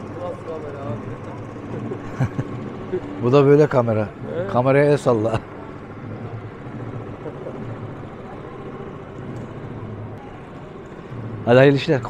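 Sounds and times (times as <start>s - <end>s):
low hum: 0.0s - 12.0s
faint distant voices: 5.4s - 12.0s.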